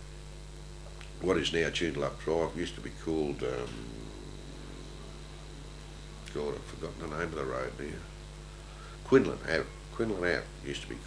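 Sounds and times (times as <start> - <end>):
faint hiss: 0.0 - 11.0
low hum: 2.0 - 9.9.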